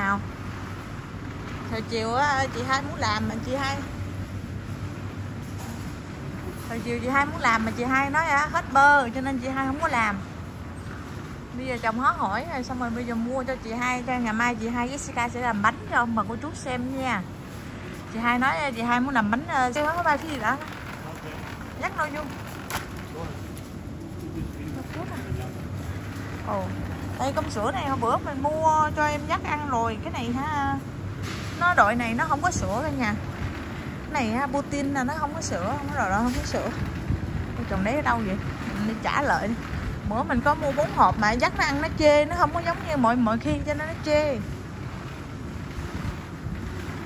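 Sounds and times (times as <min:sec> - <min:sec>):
refrigerated cases humming: 0:00.0 - 0:47.0
store background noise: 0:00.0 - 0:47.0
supermarket background rumble and hiss: 0:00.0 - 0:47.0
wind rumble on microphone: 0:18.0 - 0:47.0.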